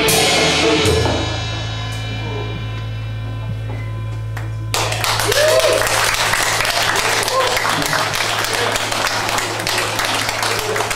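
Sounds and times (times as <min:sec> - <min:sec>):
rock band chord and cymbals: 0:00.0 - 0:04.7
audience applause and cheering: 0:04.4 - 0:10.9.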